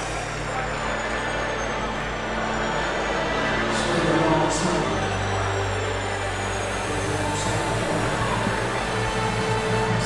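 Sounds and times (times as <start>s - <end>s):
arena crowd hubbub: 0.0s - 10.0s
low drone: 0.0s - 10.0s.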